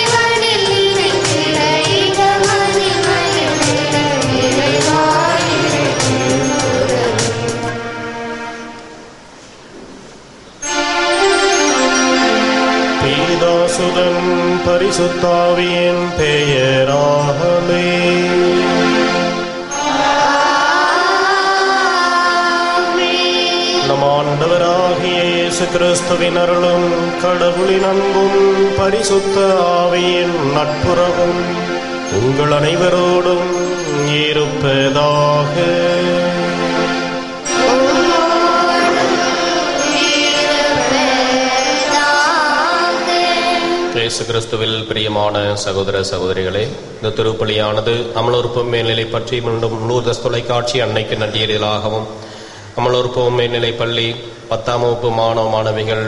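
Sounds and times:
person singing a hymn: 0.0s - 9.1s, 10.6s - 45.6s
sustained keyboard chords: 0.0s - 54.4s
steady held drone tone: 0.0s - 56.0s
person chanting long notes: 0.9s - 9.1s, 10.6s - 44.3s.

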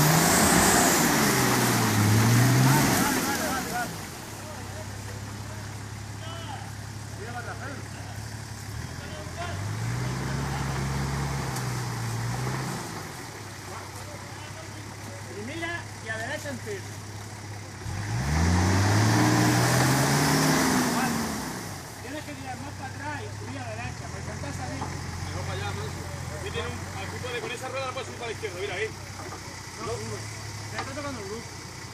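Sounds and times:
engine revving hard: 0.0s - 4.1s, 9.4s - 13.1s, 17.8s - 21.9s
truck engine running at low revs: 0.0s - 31.9s.

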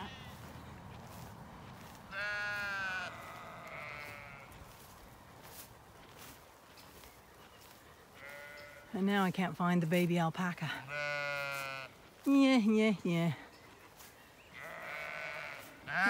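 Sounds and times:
sheep bleating: 0.0s - 0.4s, 2.1s - 4.6s, 8.2s - 8.9s, 10.8s - 12.0s, 14.5s - 16.0s.

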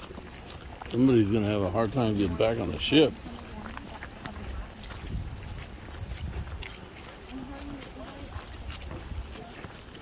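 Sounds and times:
footsteps on stone path: 0.0s - 10.0s.

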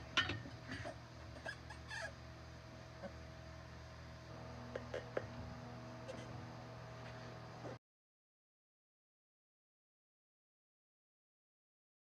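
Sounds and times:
steady low hum: 0.0s - 7.8s.

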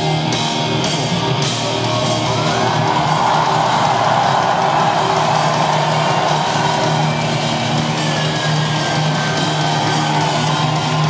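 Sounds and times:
crowd screaming and cheering: 0.0s - 11.0s
live rock band playing loudly: 0.0s - 11.0s.

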